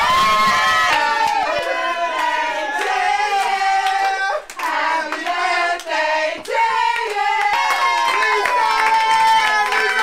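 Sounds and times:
people clapping hands: 0.1 - 10.0
group of people singing: 0.4 - 9.0.

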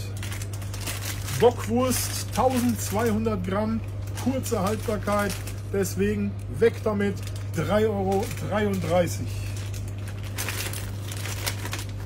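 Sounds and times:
low fan hum: 0.0 - 12.0
plastic packs crinkling: 0.0 - 12.0.

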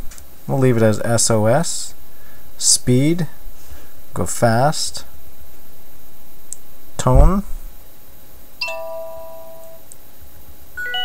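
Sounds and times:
phone notification chime: 10.8 - 11.0.

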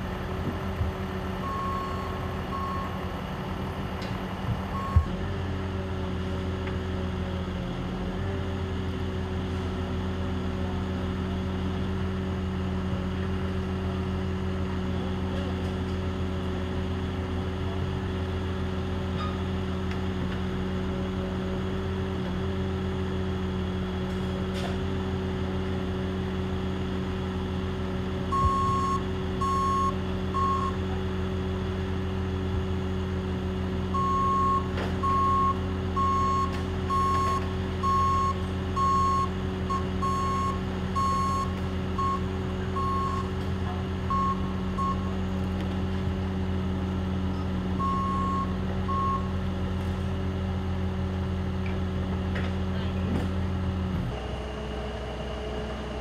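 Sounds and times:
loader engine running: 0.0 - 56.0
reversing alarm beeps: 1.4 - 3.0, 4.7 - 5.2, 28.3 - 30.8, 33.9 - 43.4, 44.1 - 45.1, 47.8 - 49.3.

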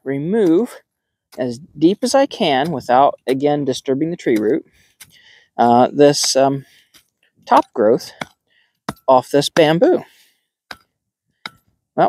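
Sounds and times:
hoe chopping into soil: 0.3 - 3.7.

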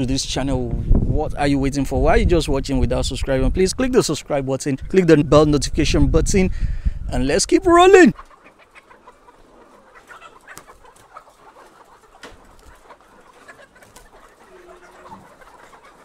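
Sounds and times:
hens clucking faintly: 7.1 - 16.0.

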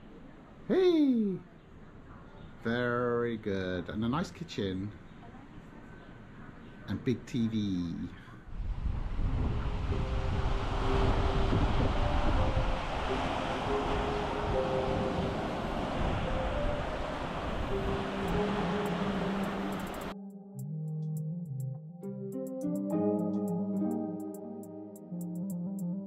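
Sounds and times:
wind rumbling on microphone: 8.5 - 20.1
surf washing onto beach: 8.6 - 20.1
soft background music: 9.2 - 26.0.

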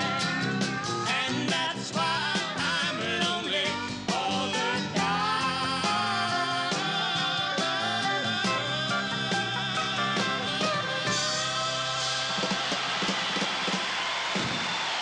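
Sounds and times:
strummed acoustic guitar: 0.0 - 13.0
drums keeping a beat: 0.0 - 15.0
man and woman singing in harmony: 1.0 - 12.8.

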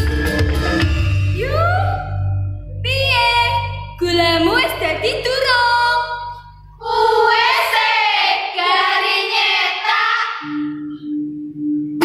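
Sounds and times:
music with percussion: 0.0 - 1.7.

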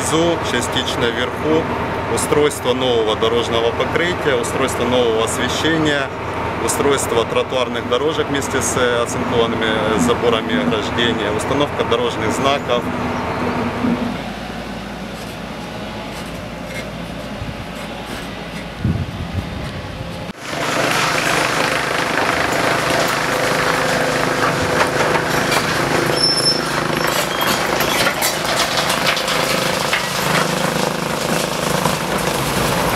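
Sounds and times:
excavator running: 0.0 - 32.9
steady machinery engine: 0.0 - 32.9
metal clanks and scrapes: 16.1 - 18.8, 22.8 - 32.8.

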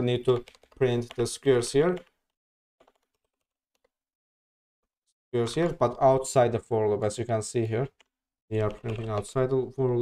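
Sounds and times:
computer keyboard keystrokes: 0.3 - 1.2, 2.8 - 3.9, 8.0 - 9.3.

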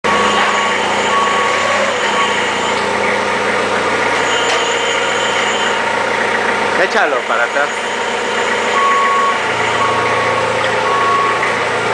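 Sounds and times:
forklift engine droning: 0.0 - 11.9.

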